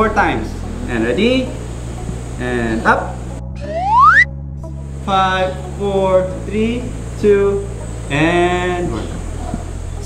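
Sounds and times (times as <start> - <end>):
background music: 0.0 - 10.0
rising whistle sound effect: 3.6 - 4.3.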